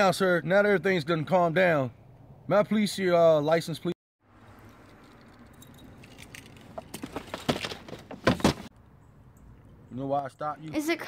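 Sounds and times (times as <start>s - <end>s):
rattling and clicking handling sounds: 4.7s - 8.7s.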